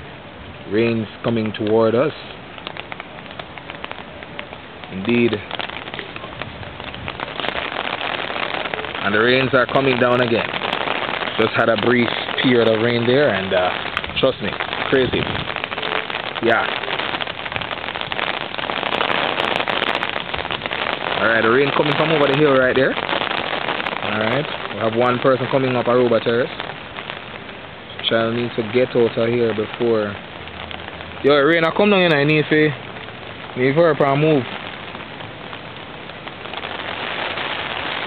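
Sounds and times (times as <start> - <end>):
heavy rain hissing: 0.0 - 38.0
raindrops ticking: 0.0 - 38.0.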